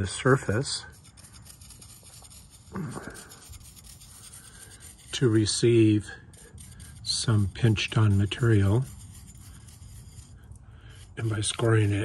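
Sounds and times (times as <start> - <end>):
metal knife scratching sand: 0.0 - 12.0.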